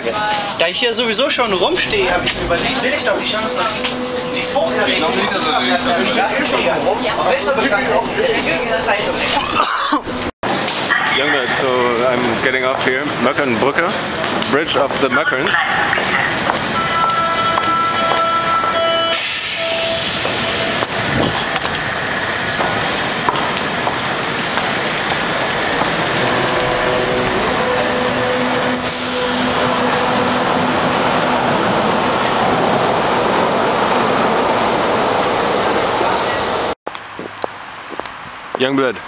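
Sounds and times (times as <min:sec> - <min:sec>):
underground station noise: 0:00.0 - 0:39.0
steady tones: 0:00.8 - 0:10.3, 0:19.6 - 0:35.0.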